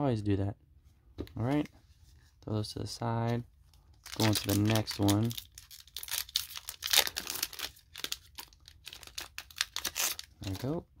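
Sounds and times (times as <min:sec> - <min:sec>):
foil wrapper crinkling and tearing: 0:04.0 - 0:10.8.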